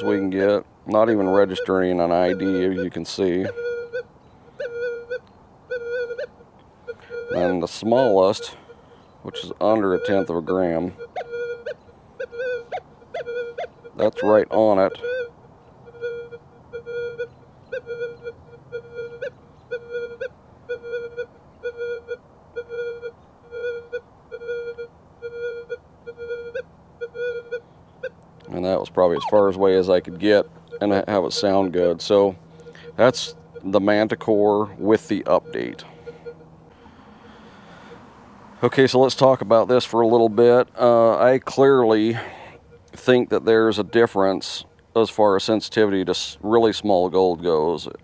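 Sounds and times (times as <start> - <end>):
metal detector tones: 0.0 - 21.3, 21.9 - 37.0.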